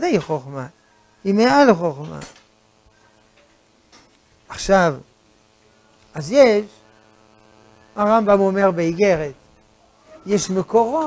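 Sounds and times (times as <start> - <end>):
man speaking: 0.0 - 2.3, 4.5 - 5.1, 6.1 - 6.8, 8.0 - 9.4, 10.2 - 11.0
faint steady hum: 0.0 - 11.0.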